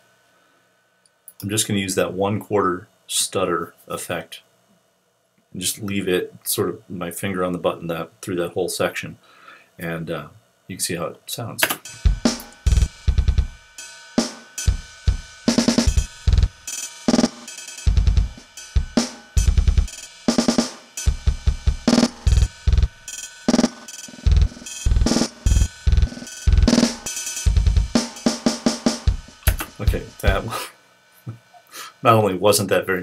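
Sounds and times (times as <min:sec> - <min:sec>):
drum loop with stutter effect: 0:11.8 - 0:30.6.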